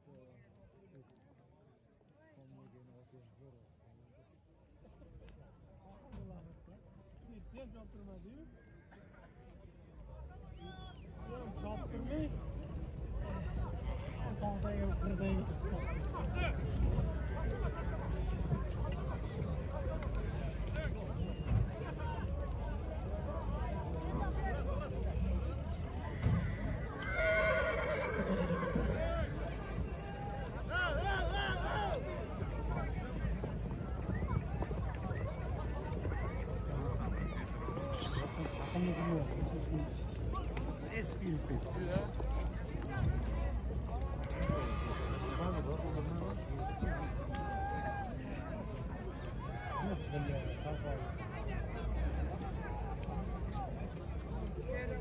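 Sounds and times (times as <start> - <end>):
crowd voices: 0.0 - 55.0
rumble of horses milling: 11.1 - 55.0
horse whinnying: 26.5 - 29.0.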